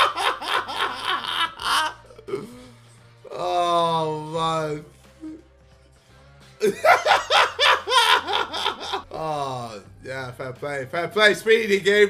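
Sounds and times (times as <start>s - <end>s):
man laughing hard: 0.0s - 2.2s, 6.6s - 9.5s.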